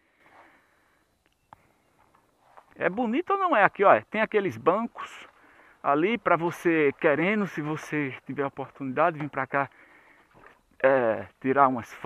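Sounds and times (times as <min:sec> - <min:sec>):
faint background hiss: 0:00.0 - 0:12.0
faint click: 0:01.2 - 0:01.6.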